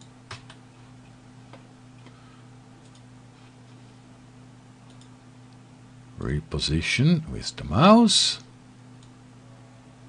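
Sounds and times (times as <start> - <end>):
steady low hum: 0.0 - 10.0
computer mouse clicks: 2.8 - 3.1, 4.9 - 5.1.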